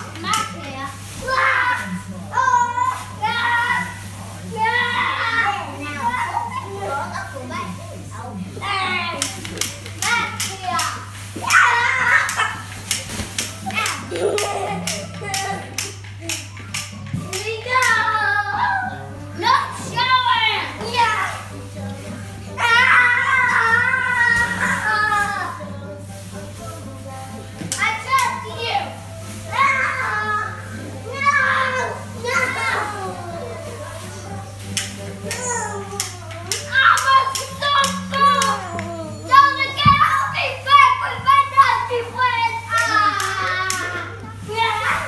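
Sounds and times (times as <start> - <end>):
children calling out and squealing: 11.4 - 12.6, 22.6 - 25.6, 29.5 - 33.3, 35.3 - 45.0.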